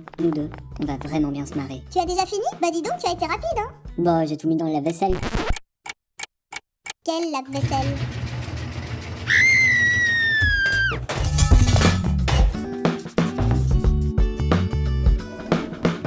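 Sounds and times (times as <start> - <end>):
washing machine rumbling: 7.6 - 10.1
upbeat music with drums: 10.4 - 16.0.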